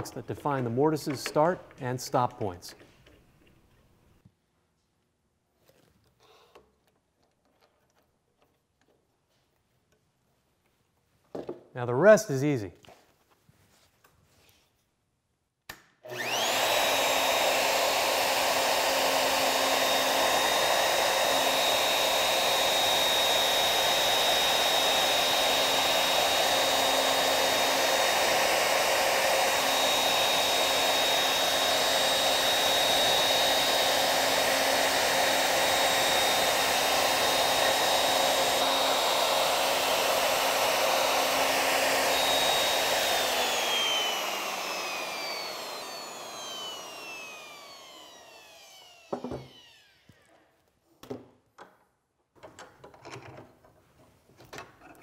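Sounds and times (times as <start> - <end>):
router whining: 16.1 - 50.5.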